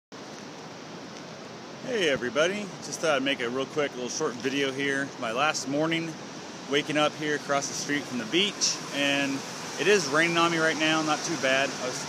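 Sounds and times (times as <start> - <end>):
light rain hiss: 0.2 - 12.0
surf on a beach: 0.2 - 12.0.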